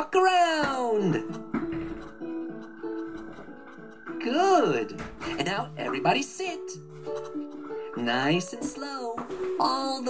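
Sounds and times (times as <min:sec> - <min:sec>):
person speaking: 0:00.0 - 0:01.5, 0:04.0 - 0:06.9, 0:07.8 - 0:10.0
plucked acoustic guitar tune: 0:00.0 - 0:10.0.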